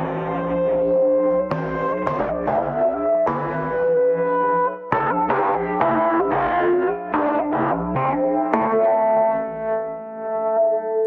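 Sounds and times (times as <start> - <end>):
steel guitar notes bending: 0.0 - 11.0.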